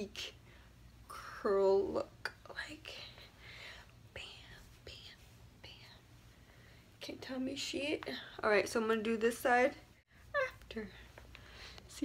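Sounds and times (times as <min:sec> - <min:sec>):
woman whispering: 0:02.2 - 0:03.3, 0:04.1 - 0:06.1.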